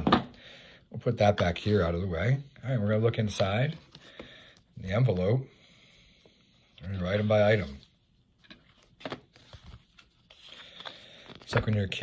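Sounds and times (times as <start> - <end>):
paper cards rustling: 7.0 - 12.0.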